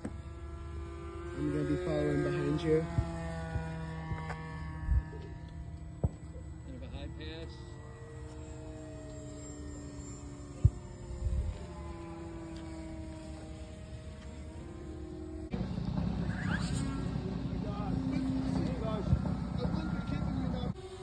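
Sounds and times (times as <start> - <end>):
model airplane motor droning: 0.0 - 21.0.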